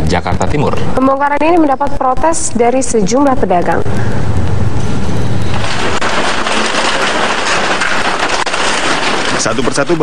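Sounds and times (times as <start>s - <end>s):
crunch of breaking debris: 5.4s - 10.0s.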